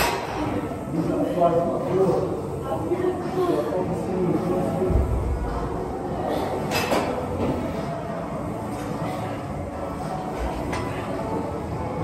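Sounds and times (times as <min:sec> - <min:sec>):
gym background noise: 0:00.0 - 0:12.0.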